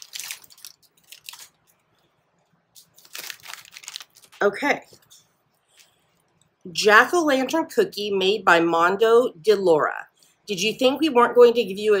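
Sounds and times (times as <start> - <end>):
cellophane bag rustling: 0.0 - 1.9, 2.8 - 4.6.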